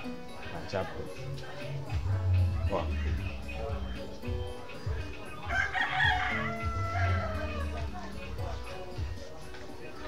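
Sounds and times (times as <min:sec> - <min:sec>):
background music with low bass: 0:00.0 - 0:10.0
rooster crowing: 0:05.5 - 0:07.8.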